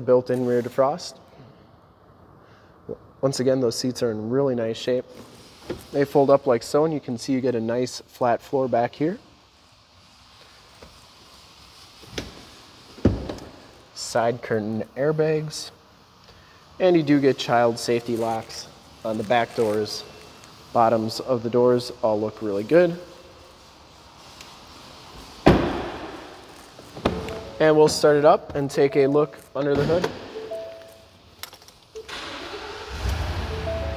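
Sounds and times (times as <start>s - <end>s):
truck door slamming: 25.4s - 26.1s.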